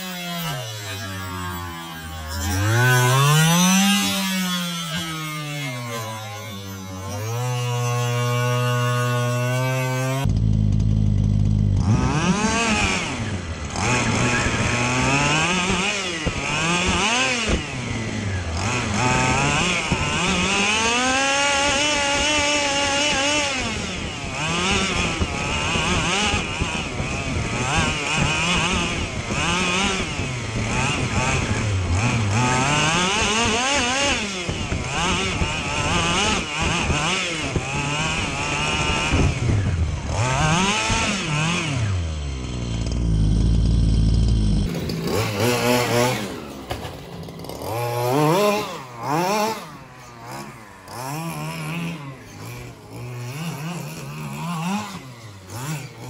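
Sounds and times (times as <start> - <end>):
rc buggy engine revving: 0.0 - 56.0.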